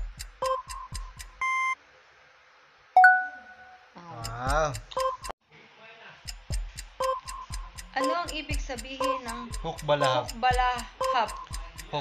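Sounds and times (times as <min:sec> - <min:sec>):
quick electronic ticks: 0:00.0 - 0:01.5, 0:04.2 - 0:05.3, 0:06.3 - 0:12.0.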